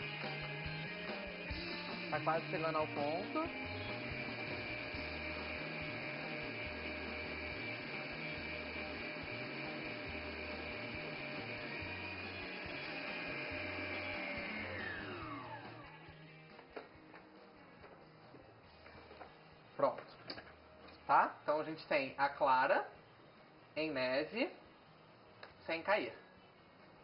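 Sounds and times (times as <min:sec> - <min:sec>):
stand mixer motor whine: 0:00.0 - 0:16.4.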